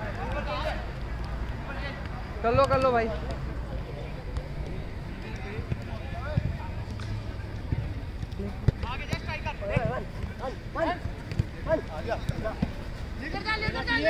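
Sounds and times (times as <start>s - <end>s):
players shouting: 3.8s - 14.0s
ball kick: 4.3s - 7.0s, 7.6s - 13.9s.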